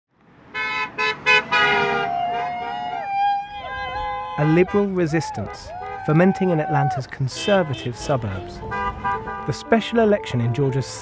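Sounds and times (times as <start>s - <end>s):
truck horn honking: 0.5s - 10.8s.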